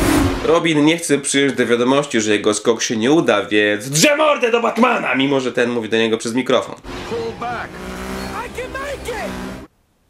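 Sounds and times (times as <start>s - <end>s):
man speaking: 3.3s - 9.6s
vehicle engine rumble: 6.8s - 9.7s.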